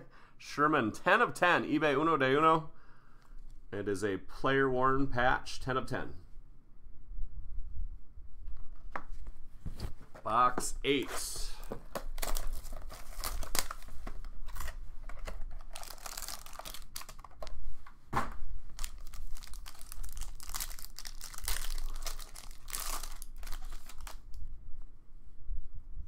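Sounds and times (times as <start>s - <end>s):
wrapping torn and crinkled: 12.0s - 17.6s, 18.7s - 24.4s.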